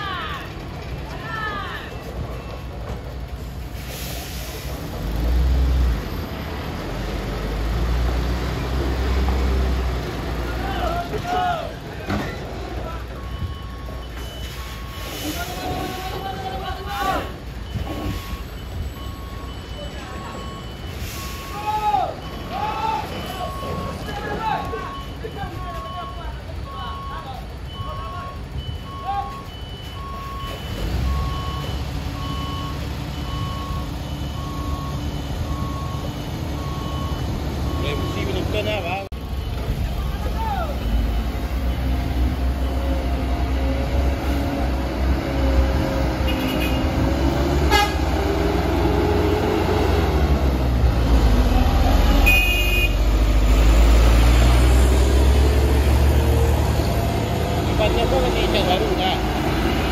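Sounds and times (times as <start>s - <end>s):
truck diesel engine under load: 0.0s - 59.9s
reversing beeper: 12.1s - 59.9s.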